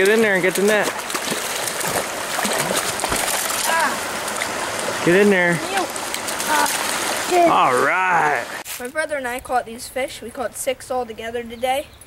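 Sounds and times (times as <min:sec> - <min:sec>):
fish splashing at surface: 0:00.0 - 0:07.5
flowing water rushing: 0:00.0 - 0:08.6.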